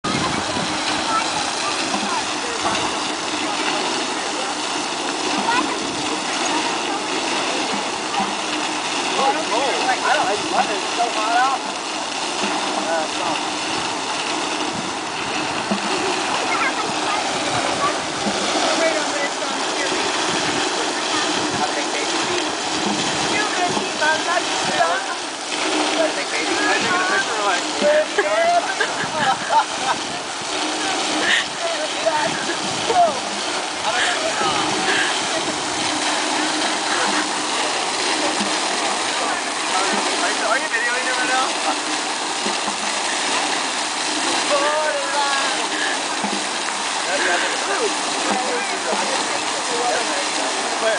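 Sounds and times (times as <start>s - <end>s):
people talking: 0.0s - 11.8s, 12.4s - 13.5s, 15.6s - 50.9s
fountain water rushing: 0.0s - 50.9s.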